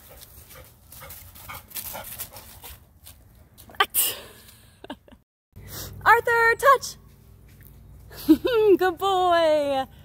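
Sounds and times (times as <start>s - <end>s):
dog panting: 0.0s - 2.8s.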